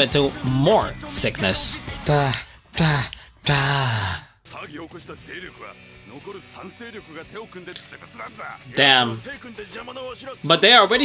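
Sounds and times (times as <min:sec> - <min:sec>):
quiet background music: 0:00.0 - 0:03.0, 0:04.5 - 0:11.0
person speaking: 0:00.0 - 0:04.3, 0:06.4 - 0:11.0.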